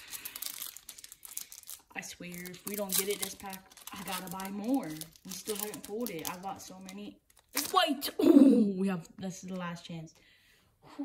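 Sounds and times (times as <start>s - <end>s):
foil wrapper crinkling: 0.0s - 8.0s.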